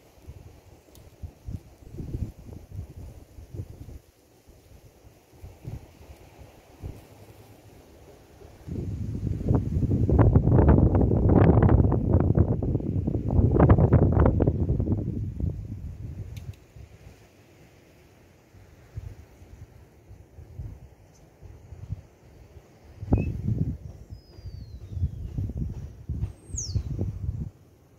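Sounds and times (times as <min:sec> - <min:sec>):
faint wind noise: 0:00.0 - 0:27.9
wind buffeting microphone: 0:00.3 - 0:07.2, 0:08.6 - 0:17.2, 0:18.8 - 0:27.6.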